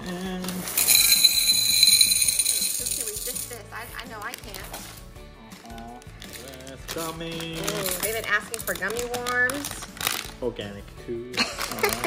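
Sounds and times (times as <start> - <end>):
candies clattering into glass bowl: 0.4 - 5.0, 6.1 - 10.4.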